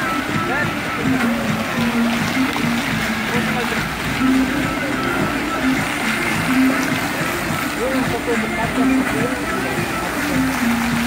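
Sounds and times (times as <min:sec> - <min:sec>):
fountain water jets splashing: 0:00.0 - 0:11.0
music with held low notes: 0:00.0 - 0:11.0.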